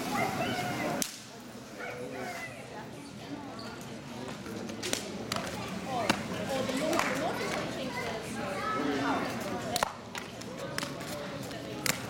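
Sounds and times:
faint murmur of onlookers: 0.0s - 12.0s.

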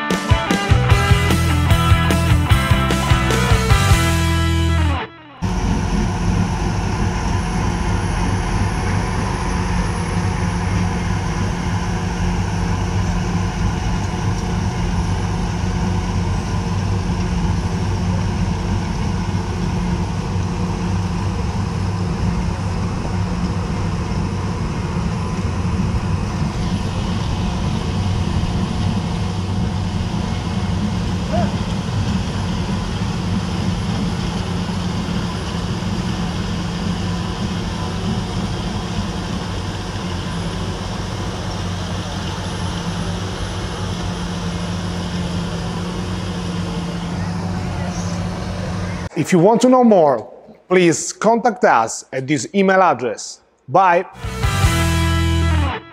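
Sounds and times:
diesel engine droning: 0.0s - 50.3s, 54.2s - 55.9s.

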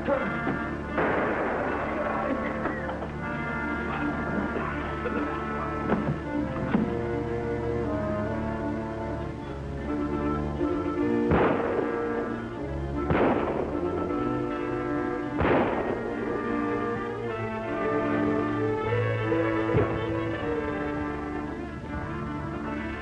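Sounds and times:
dramatic orchestral music: 0.0s - 23.0s
sharp bangs: 0.4s - 2.7s, 11.3s - 12.4s, 13.0s - 14.2s, 15.3s - 16.8s.

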